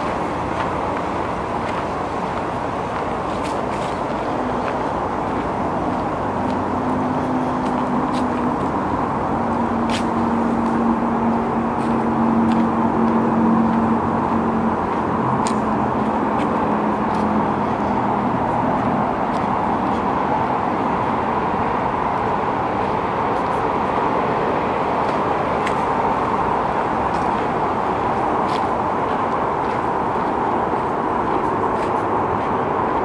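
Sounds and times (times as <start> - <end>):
engine hum: 0.0 - 33.0
road traffic roar: 0.0 - 33.0.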